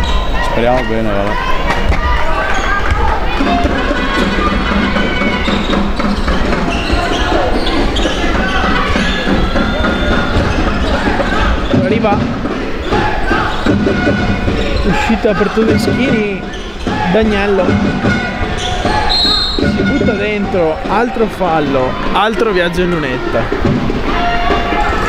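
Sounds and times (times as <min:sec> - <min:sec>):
many voices in a hall: 0:00.0 - 0:25.0.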